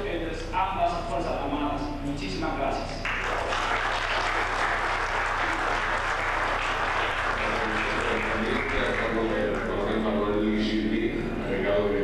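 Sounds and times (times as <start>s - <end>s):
crowd applauding: 3.0s - 10.0s.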